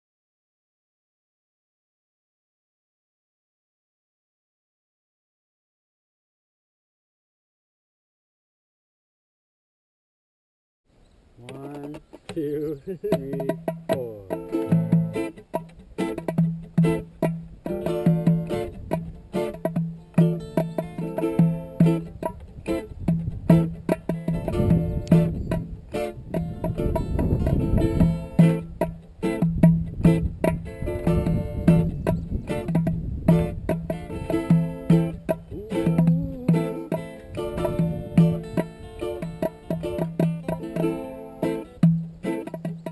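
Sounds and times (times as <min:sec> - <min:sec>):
acoustic reggae guitars: 0:11.0 - 0:42.9.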